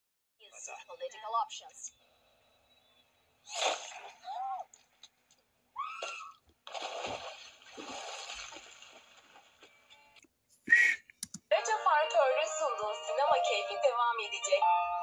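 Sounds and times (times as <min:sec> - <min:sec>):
voice sounds with curving pitch: 0:11.5 - 0:14.8.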